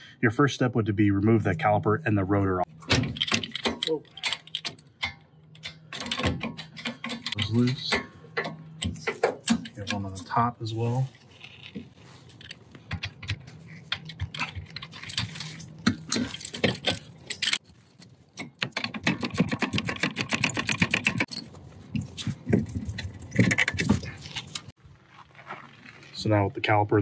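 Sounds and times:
metal tools clinking: 2.8 - 18.5, 20.3 - 24.7.

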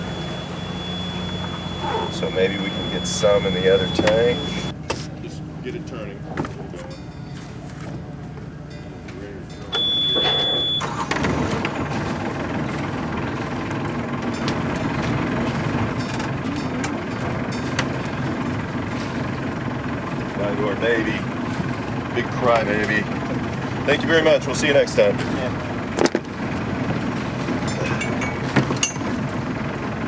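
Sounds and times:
high warning buzzer: 0.0 - 4.7, 9.8 - 11.0
diesel engine running: 0.0 - 6.7, 7.3 - 30.0
starter motor cranking: 10.2 - 16.4.

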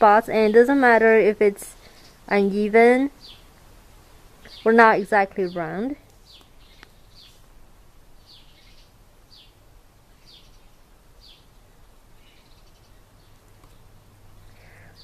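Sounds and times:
faint low hum: 0.0 - 15.0
bird chirping faintly: 4.4 - 7.5, 8.2 - 15.0.

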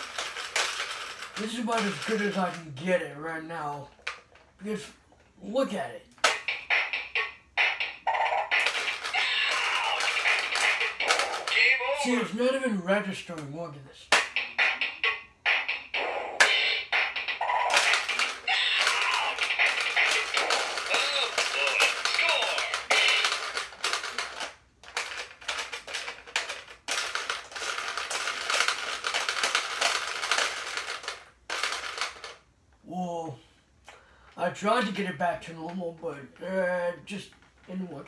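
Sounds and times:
electronic toy beat: 6.2 - 12.2, 14.1 - 24.2
electronic voice calling commands: 9.1 - 10.3, 17.5 - 23.2.

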